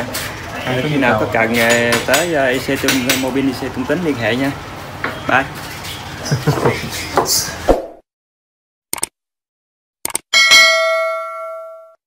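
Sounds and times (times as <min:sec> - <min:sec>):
notification bell ding: 0:10.4 - 0:12.0.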